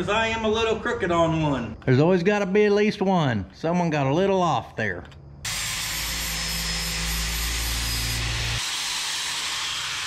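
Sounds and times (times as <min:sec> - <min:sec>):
angle grinder grinding metal: 0:05.5 - 0:10.0.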